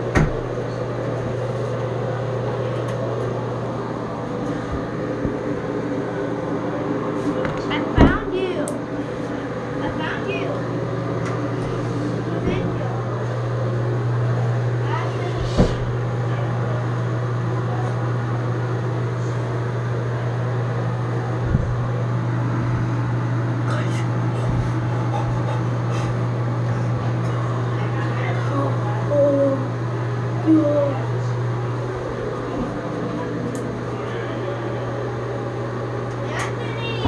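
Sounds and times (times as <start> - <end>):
low mechanical hum: 0.0 - 37.0
soft thump: 15.4 - 15.9.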